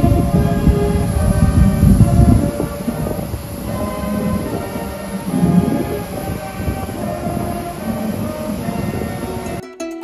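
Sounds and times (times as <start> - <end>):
heavy low rumble: 0.0 - 9.6
band playing long held notes: 0.0 - 9.7.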